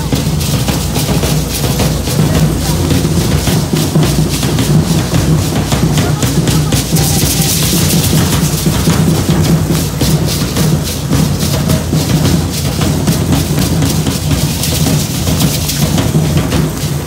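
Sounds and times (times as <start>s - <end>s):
dance drums beating fast rhythm: 0.0s - 17.0s.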